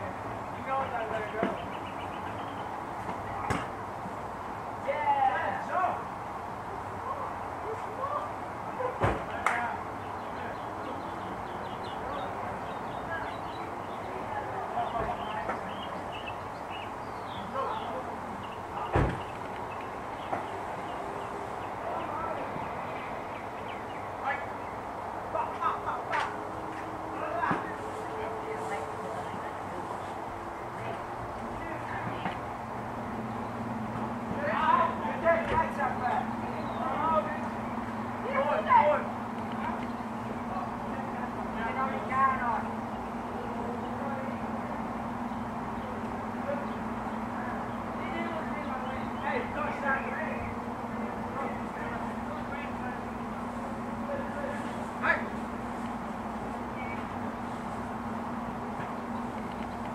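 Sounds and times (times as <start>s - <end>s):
distant people talking: 0.0s - 59.9s
distant voices calling out: 0.0s - 59.9s
steady background hum: 0.0s - 59.9s.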